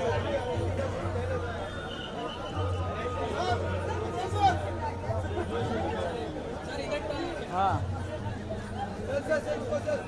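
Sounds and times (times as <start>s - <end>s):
indistinct chatter of voices: 0.0s - 10.0s.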